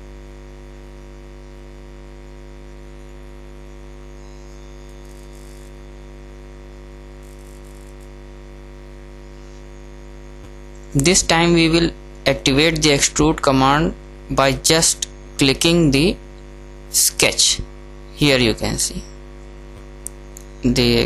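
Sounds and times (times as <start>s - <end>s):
electrical mains hum: 0.0s - 21.0s.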